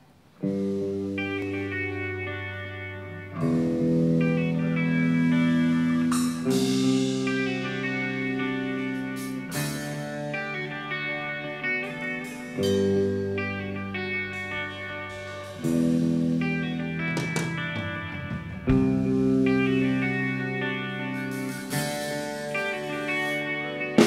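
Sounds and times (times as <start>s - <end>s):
electric guitar chords ringing: 0.0s - 24.0s.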